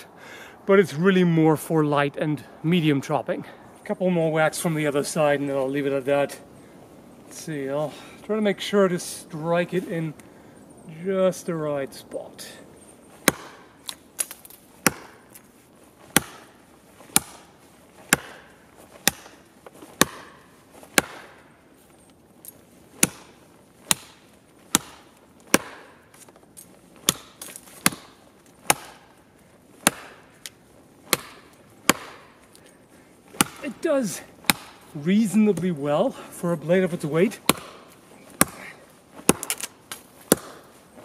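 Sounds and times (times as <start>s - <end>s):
blade chopping into wood: 13.2s - 15.4s, 16.1s - 21.5s, 23.0s - 26.4s, 27.0s - 29.2s, 29.8s - 32.6s, 33.3s - 34.9s, 37.4s - 40.8s.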